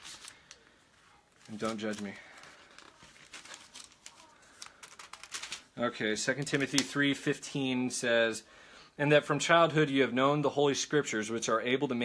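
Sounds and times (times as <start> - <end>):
thin paper pages flipping: 0.0 - 5.8, 6.4 - 7.2.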